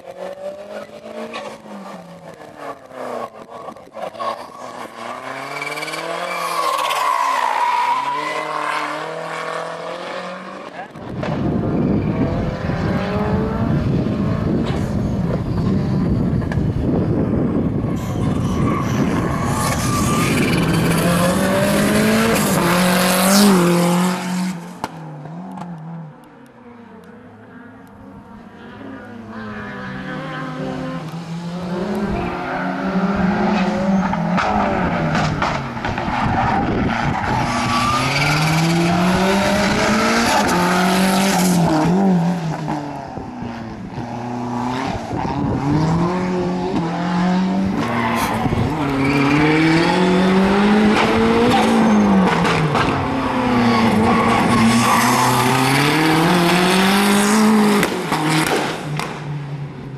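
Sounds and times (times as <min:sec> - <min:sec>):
car engine revving: 0:00.0 - 0:59.2.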